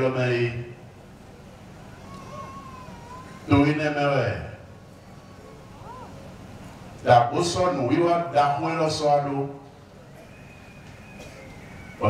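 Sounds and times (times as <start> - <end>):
man speaking into a microphone: 0.0 - 0.8, 3.5 - 4.6, 7.0 - 9.6.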